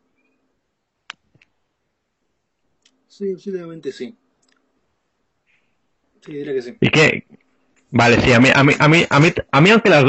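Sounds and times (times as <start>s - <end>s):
person speaking: 6.2s - 10.0s.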